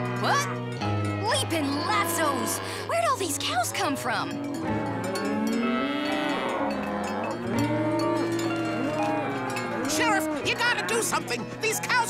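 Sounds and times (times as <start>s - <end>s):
cowbells clanking: 0.0s - 12.0s
cows mooing: 0.0s - 12.0s.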